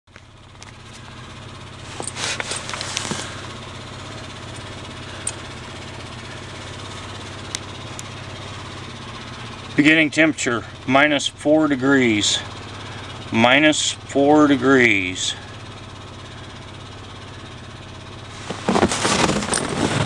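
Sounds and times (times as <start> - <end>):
vehicle engine idling: 0.1 - 20.0.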